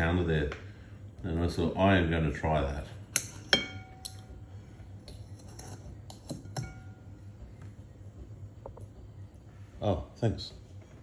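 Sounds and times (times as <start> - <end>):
cutlery clinking on ceramic bowl: 3.2 - 4.2, 5.1 - 7.0.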